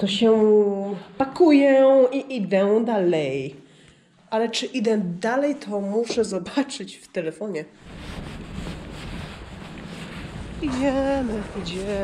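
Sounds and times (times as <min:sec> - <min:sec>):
wind buffeting microphone: 0:07.8 - 0:12.0.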